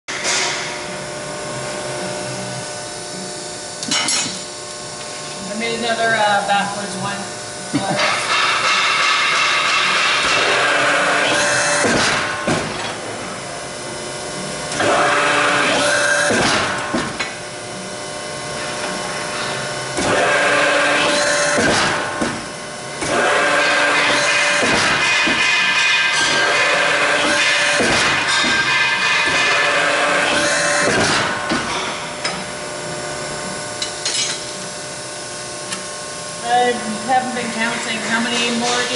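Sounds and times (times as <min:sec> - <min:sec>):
press brake whine: 0:08.2 - 0:34.6.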